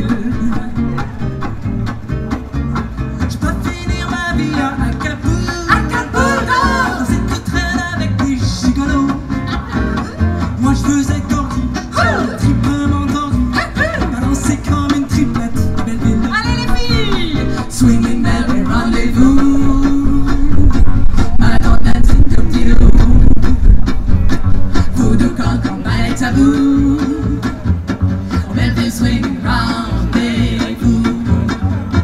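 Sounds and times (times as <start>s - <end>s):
plucked double bass: 0.0s - 32.0s
strummed acoustic guitars: 0.0s - 32.0s.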